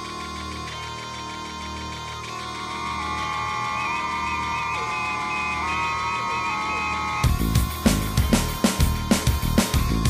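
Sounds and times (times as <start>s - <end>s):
held synthesizer tones: 2.8s - 7.5s.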